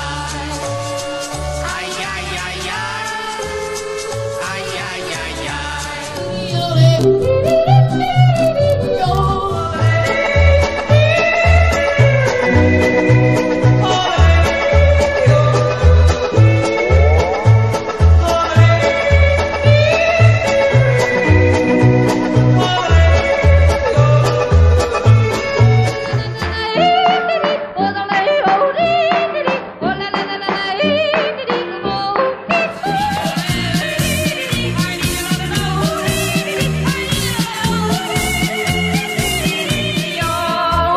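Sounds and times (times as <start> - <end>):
small band playing: 0.0 - 40.9
bouncing bass line: 4.2 - 27.0, 32.8 - 40.9.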